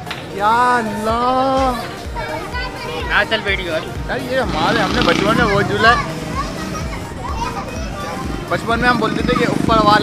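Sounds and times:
people chattering: 0:00.0 - 0:10.0
children playing: 0:00.6 - 0:10.0.

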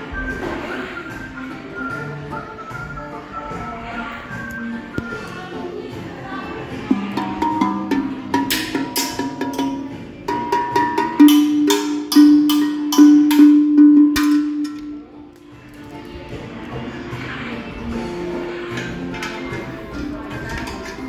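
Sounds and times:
steel tongue drum notes: 0:06.9 - 0:15.1.

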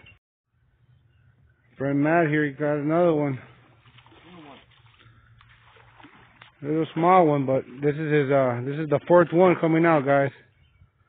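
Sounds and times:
fish splashing at water surface: 0:03.7 - 0:07.8.

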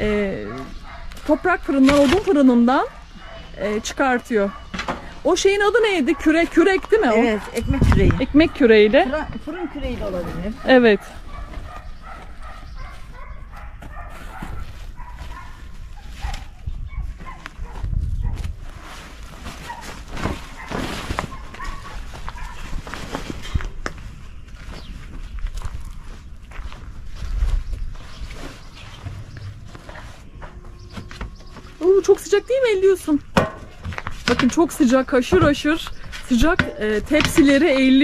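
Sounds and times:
wind rumble on microphone: 0:07.4 - 0:12.1, 0:14.3 - 0:19.1, 0:21.4 - 0:31.5
fabric rustling and flapping: 0:13.8 - 0:32.9.

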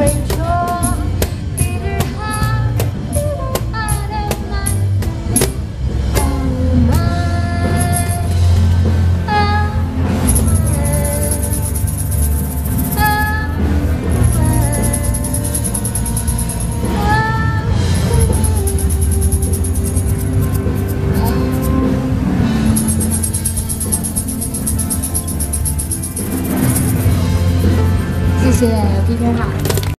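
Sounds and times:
woman singing: 0:00.0 - 0:08.4, 0:09.2 - 0:11.8, 0:12.9 - 0:16.2, 0:16.8 - 0:20.0
electric bass: 0:00.0 - 0:30.0
tambourine shaking: 0:07.6 - 0:08.4, 0:10.2 - 0:17.2, 0:18.1 - 0:21.9, 0:22.6 - 0:28.7.

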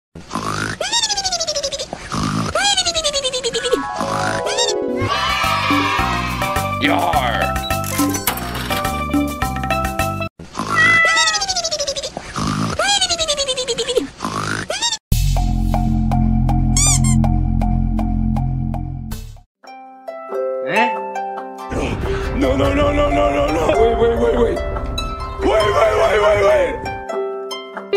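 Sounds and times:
cartoon snoring: 0:00.3 - 0:00.8.

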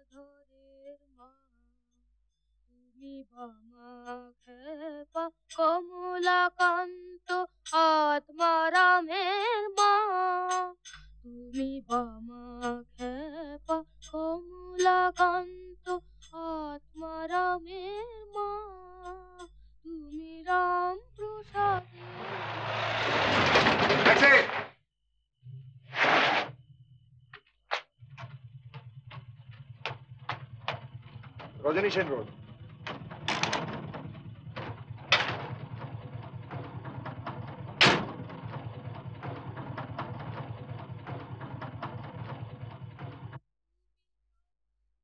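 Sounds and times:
car engine running: 0:21.1 - 0:24.7, 0:26.0 - 0:43.4
rattling clicks: 0:28.0 - 0:43.4.

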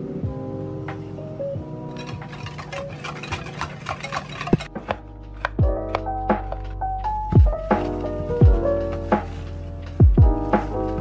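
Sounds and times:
soft background music: 0:00.0 - 0:11.0
whisk clinking against ceramic bowl: 0:01.9 - 0:04.7.

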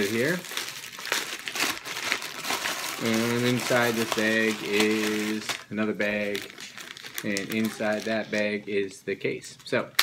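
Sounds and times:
plastic mailer bag crinkling: 0:00.0 - 0:08.6.

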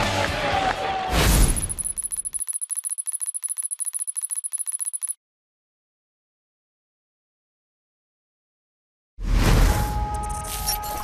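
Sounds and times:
high bell-like ringing tone: 0:01.5 - 0:05.2
rapid sharp ticks: 0:01.5 - 0:05.2.

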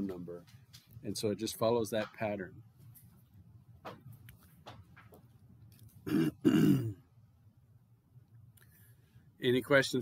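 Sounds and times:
man clearing his throat: 0:06.1 - 0:07.0.

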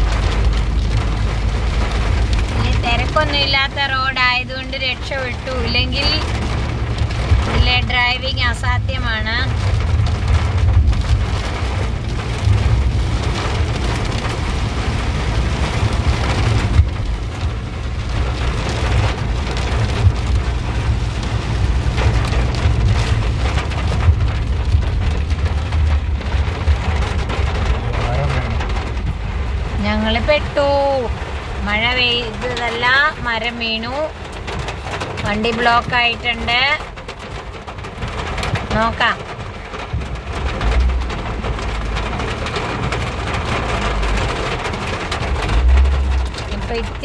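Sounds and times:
heavy rain on car roof: 0:00.0 - 0:47.0
low rumble of moving car: 0:00.0 - 0:47.0.

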